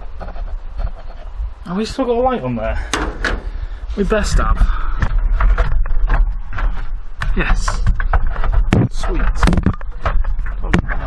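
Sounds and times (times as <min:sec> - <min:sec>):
camera handling knocks and rubbing: 0:05.0 - 0:11.0.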